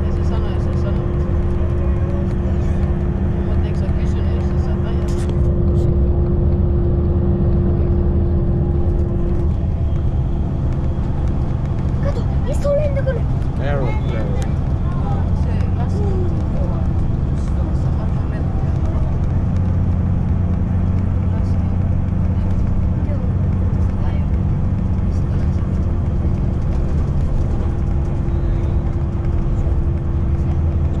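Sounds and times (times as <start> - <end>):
bus engine and road drone: 0.0 - 31.0.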